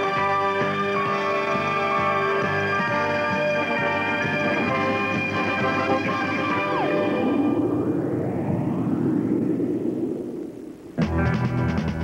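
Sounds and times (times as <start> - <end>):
rushing roaring noise: 0.0 - 11.2.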